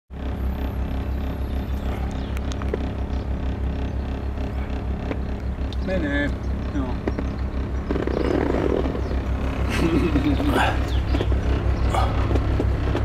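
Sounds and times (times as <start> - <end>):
motor boat engine throbbing: 0.1 - 13.0.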